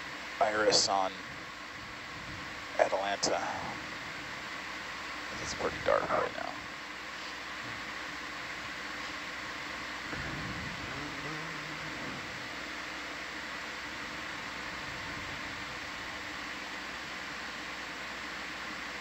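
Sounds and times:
equipment and ventilation hum: 0:00.0 - 0:19.0.

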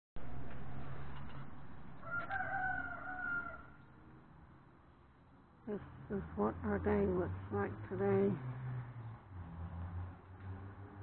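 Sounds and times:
long drawn-out bird call: 0:02.0 - 0:03.9.

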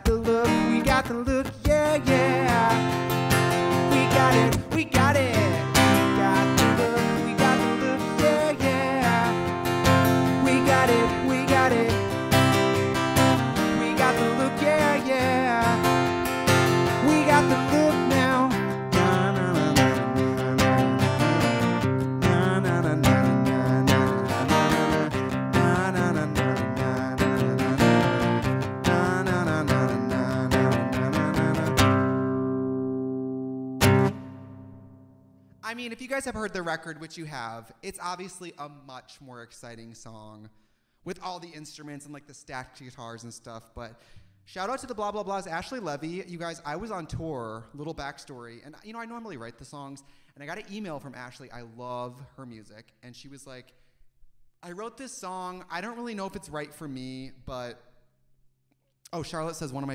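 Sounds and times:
acoustic guitar strumming: 0:00.0 - 0:35.6.

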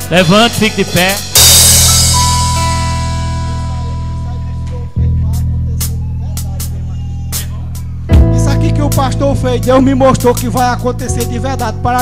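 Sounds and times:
bass and guitar chords: 0:00.0 - 0:12.0.

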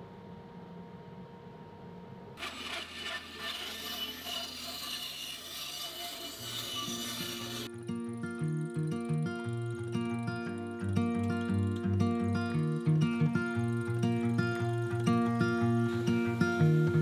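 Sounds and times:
low workshop hum: 0:00.0 - 0:17.0
band saw cutting wood: 0:02.4 - 0:07.7, 0:11.2 - 0:17.0
guitar music: 0:07.0 - 0:17.0.

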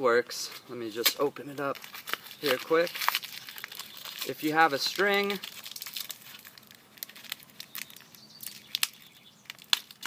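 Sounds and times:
plastic packaging crinkling: 0:01.6 - 0:10.0.

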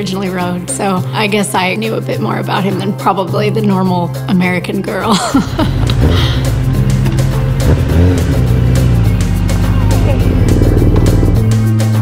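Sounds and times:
background music with steady beat: 0:00.0 - 0:12.0
motorcycle engine running: 0:05.7 - 0:11.7.

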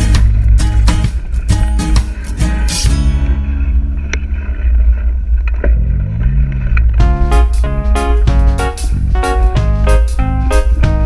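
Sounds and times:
instrumental background music: 0:00.0 - 0:04.5, 0:06.9 - 0:11.0.

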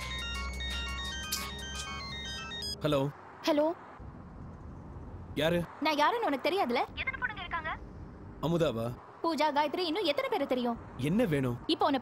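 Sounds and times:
phone ringtone beeping melody: 0:00.0 - 0:02.8
man speaking: 0:11.0 - 0:11.6.

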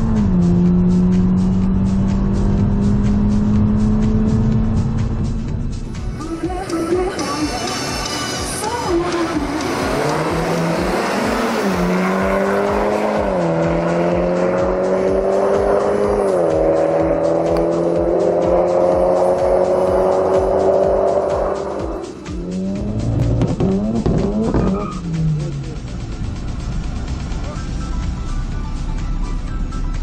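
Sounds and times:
cars accelerating hard: 0:00.0 - 0:05.6, 0:08.5 - 0:26.4
engine revving: 0:00.0 - 0:06.0, 0:07.2 - 0:27.5.

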